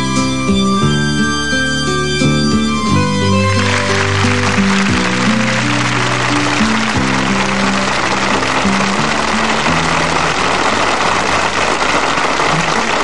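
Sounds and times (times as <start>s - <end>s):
held closing notes of song: 0.0s - 11.6s
audience applause: 3.0s - 13.0s.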